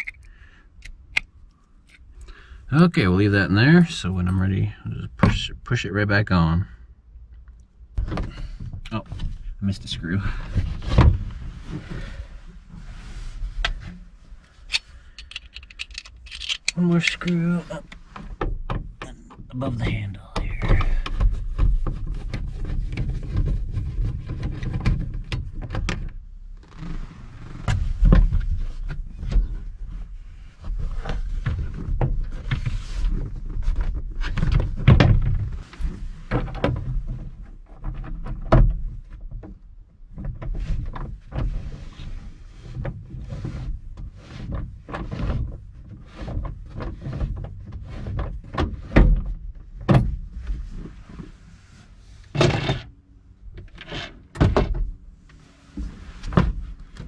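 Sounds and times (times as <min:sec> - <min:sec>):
screwdriver turning screws: 0:00.0 - 0:01.2, 0:14.7 - 0:17.2
knocks clicks and scrapes: 0:00.0 - 0:02.1, 0:14.6 - 0:26.0.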